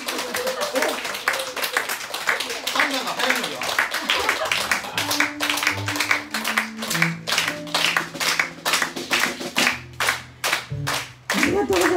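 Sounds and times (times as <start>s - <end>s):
hands clapping in rhythm: 0.0s - 11.9s.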